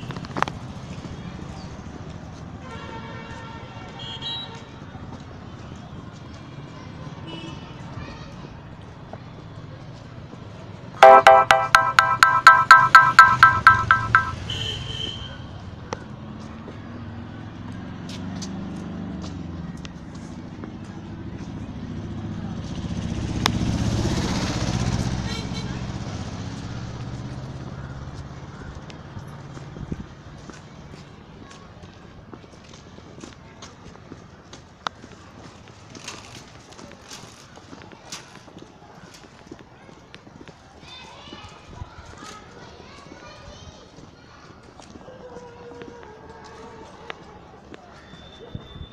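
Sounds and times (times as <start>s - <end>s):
street ambience: 0.0s - 48.9s
sharp taps or clicks: 11.0s - 14.4s.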